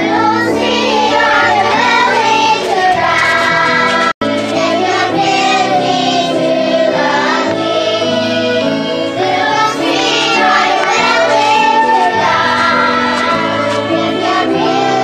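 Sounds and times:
children singing: 0:00.0 - 0:15.0
violins: 0:00.0 - 0:15.0.

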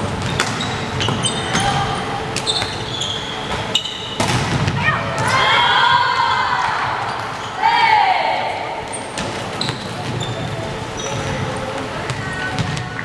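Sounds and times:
sneaker squeaks: 0:00.0 - 0:05.4, 0:07.0 - 0:07.7, 0:08.8 - 0:13.0
players shouting together: 0:04.8 - 0:08.6.

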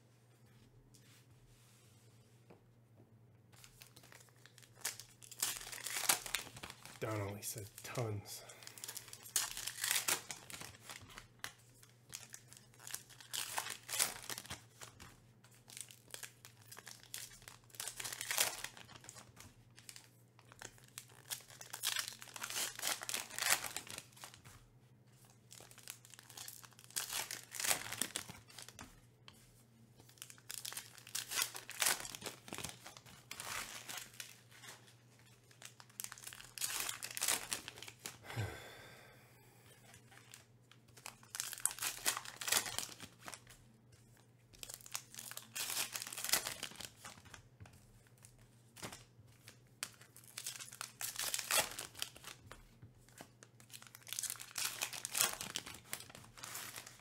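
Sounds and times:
foil wrappers crinkling and tearing: 0:03.6 - 0:29.0, 0:30.0 - 0:38.2, 0:39.8 - 0:57.0.

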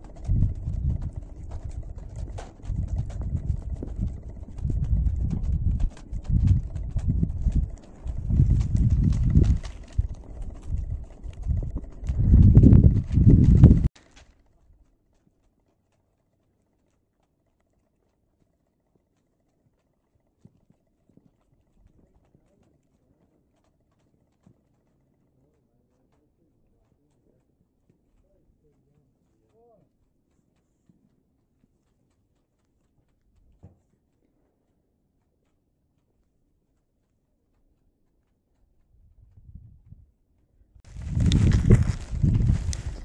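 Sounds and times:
hooves thudding in snow: 0:00.0 - 0:17.0, 0:17.7 - 0:40.0, 0:40.9 - 0:43.0.

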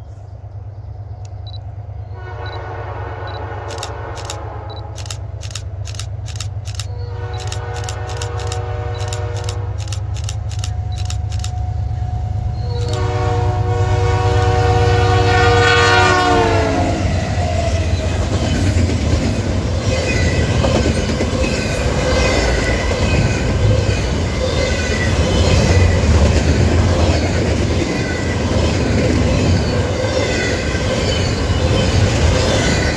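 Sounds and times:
locomotive horn chord: 0:02.1 - 0:05.0, 0:07.0 - 0:09.8, 0:12.6 - 0:17.3
wheel clicks over rail joints: 0:05.0 - 0:11.6.

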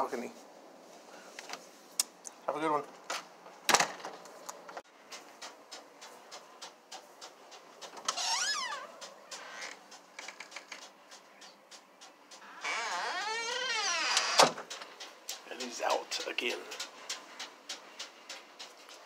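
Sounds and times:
door hinges creaking: 0:08.0 - 0:10.9, 0:12.3 - 0:14.9.

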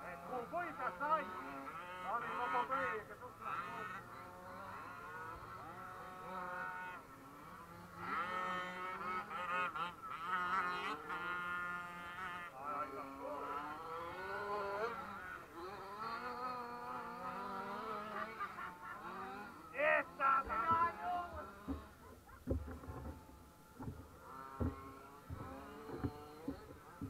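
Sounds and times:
radio-controlled car motors whining: 0:00.0 - 0:27.0.

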